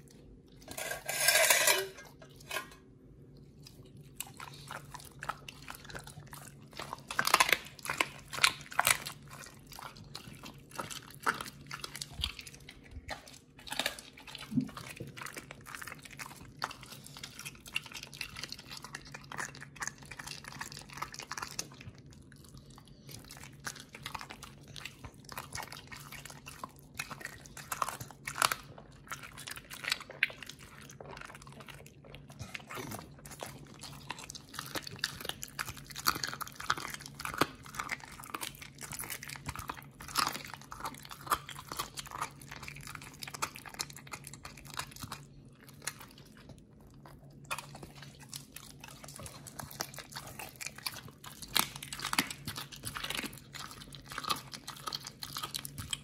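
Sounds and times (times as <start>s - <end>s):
dog biting and chewing: 3.6s - 56.0s.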